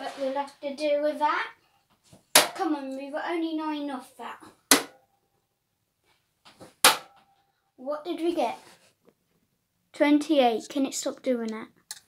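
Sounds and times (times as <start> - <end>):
dart striking dartboard: 4.7 - 5.0, 6.8 - 7.2.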